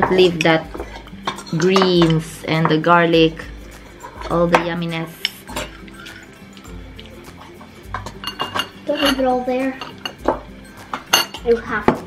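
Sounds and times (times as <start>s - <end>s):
utensils clinking on ceramic bowls: 0.0s - 12.0s.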